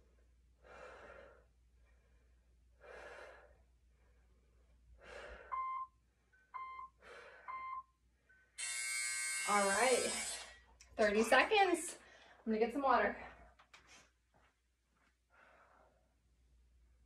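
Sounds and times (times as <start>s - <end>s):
interval timer short beeps: 5.5s - 8.4s.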